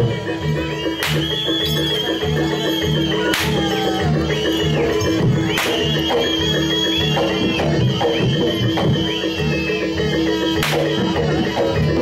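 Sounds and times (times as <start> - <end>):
steady drum rhythm: 0.0 - 12.0
whip cracks: 1.0 - 1.3, 3.3 - 3.6, 5.5 - 5.9, 10.6 - 10.9.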